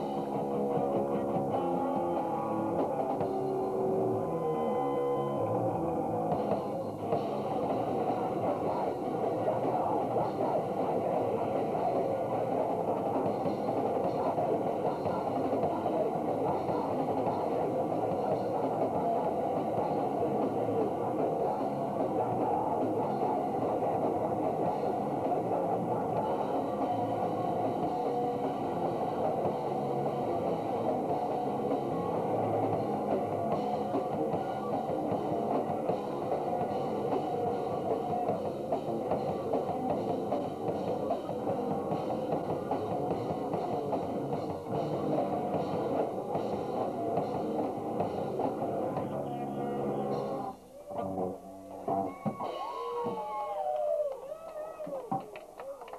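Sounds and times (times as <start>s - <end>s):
punk band playing live: 0.0s - 53.5s.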